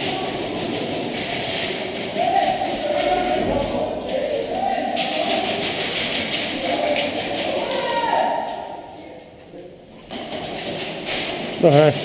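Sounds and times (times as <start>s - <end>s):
voices calling out in echoing hall: 0.0s - 9.8s.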